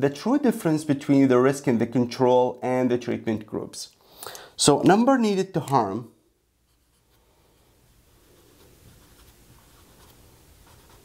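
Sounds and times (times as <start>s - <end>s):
marker writing on whiteboard: 8.4s - 11.0s.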